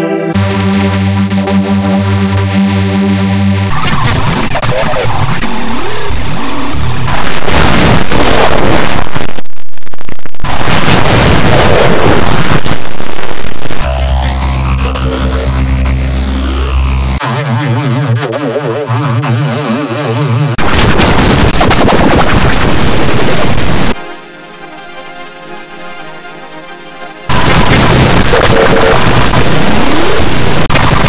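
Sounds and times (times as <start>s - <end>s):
distorted cartoon soundtrack: 0.0s - 24.0s, 27.3s - 31.0s
buzzing drone: 0.3s - 24.0s, 27.2s - 31.0s
fast warbling wobble: 3.7s - 8.9s, 10.4s - 24.0s, 27.3s - 31.0s.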